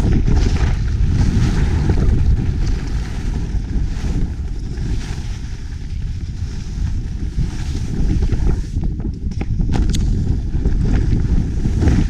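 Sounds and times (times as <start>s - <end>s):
skis sliding over snow: 0.0s - 9.1s, 9.8s - 12.0s
wind buffeting microphone: 0.0s - 12.0s.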